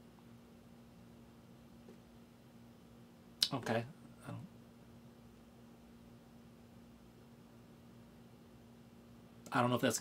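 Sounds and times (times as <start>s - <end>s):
air conditioner humming: 0.0s - 10.0s.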